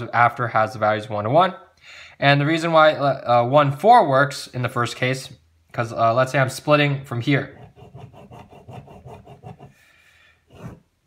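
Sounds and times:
pen scratching on paper: 7.5 - 9.8, 10.5 - 10.8.

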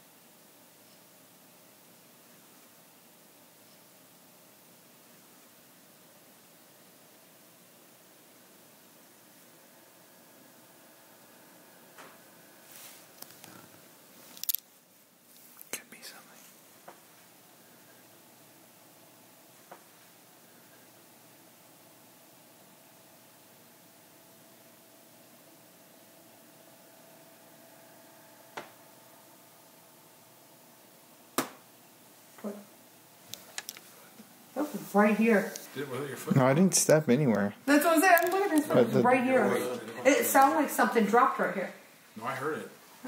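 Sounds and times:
quiet whispering: 15.4 - 17.0
sharp knock: 31.4 - 31.6.

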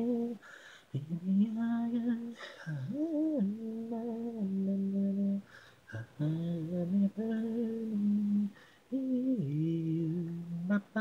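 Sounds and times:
man singing unaccompanied: 0.0 - 11.0.

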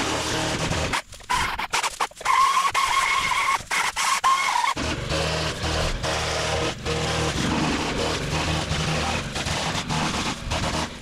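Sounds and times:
chainsaw cutting brush: 0.0 - 11.0.

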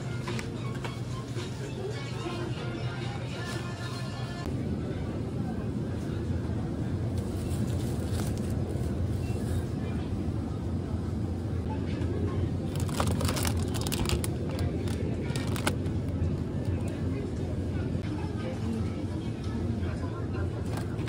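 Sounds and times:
low supermarket hum: 0.0 - 21.0
plastic container crinkling: 12.7 - 15.8.

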